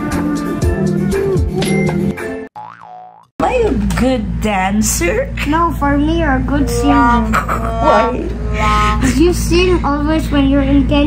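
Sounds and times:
upbeat music with drums: 0.0 - 2.5
cartoon boing sound effect: 2.6 - 3.3.

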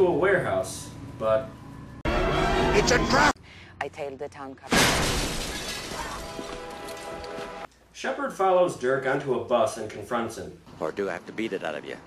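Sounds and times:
glass shattering: 4.7 - 7.2
film score music: 6.5 - 7.7.

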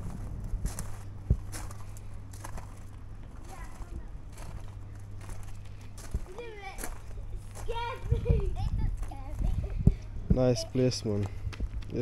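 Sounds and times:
distant voices: 0.0 - 12.0
footsteps on gravel: 0.0 - 12.0.

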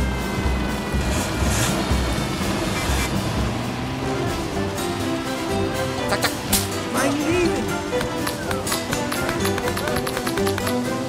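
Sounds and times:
old truck engine rumble: 0.0 - 11.0.

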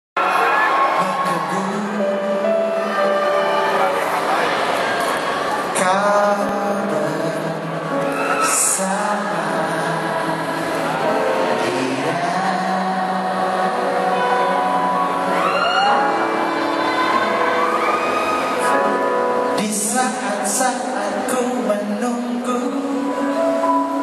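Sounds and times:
man singing into a microphone: 0.9 - 3.2, 5.7 - 16.0, 18.7 - 24.0.

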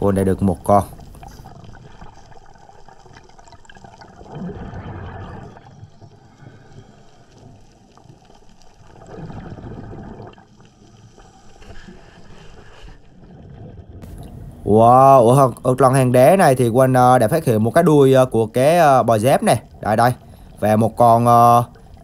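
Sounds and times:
exhaled air bubbling underwater: 0.0 - 22.0
water wash underwater: 0.0 - 22.0.

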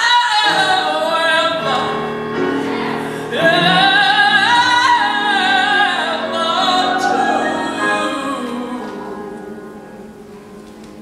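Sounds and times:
gospel choir singing: 0.0 - 10.1.

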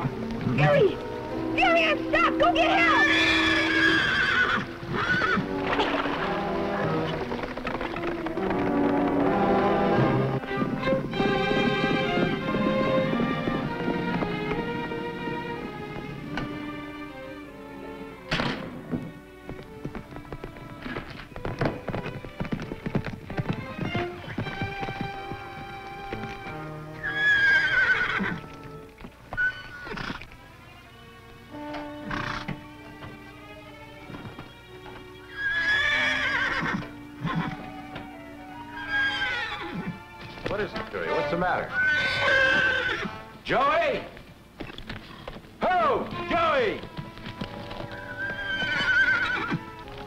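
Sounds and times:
background music: 0.0 - 50.0
horse galloping: 0.0 - 50.0
horse neighing loudly: 2.9 - 7.2, 27.0 - 28.5, 29.4 - 30.2, 32.0 - 32.5, 35.3 - 37.7, 38.6 - 40.0, 41.0 - 43.3, 47.5 - 49.8.

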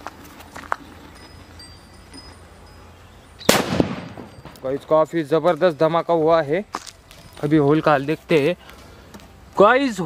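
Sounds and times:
firecracker explosion: 3.4 - 4.6
sharp crack: 3.4 - 4.8.

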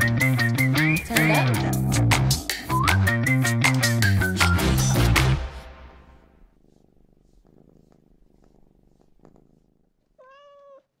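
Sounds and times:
cat purring: 6.2 - 11.0
cat meow: 10.2 - 11.0.

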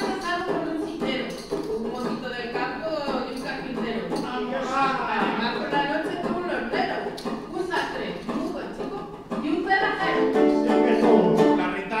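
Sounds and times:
woman speaking into a microphone: 0.0 - 10.4.

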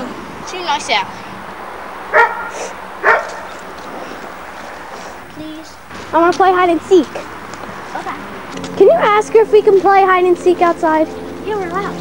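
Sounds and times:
dog barking: 2.1 - 3.6.

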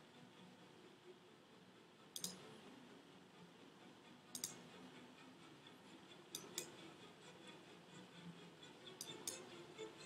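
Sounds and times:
computer mouse clicks: 2.1 - 2.4, 4.3 - 4.7, 6.3 - 6.8, 9.0 - 9.5.

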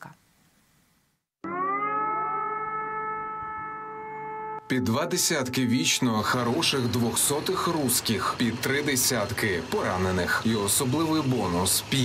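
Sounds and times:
air-raid siren wailing: 1.4 - 4.6.

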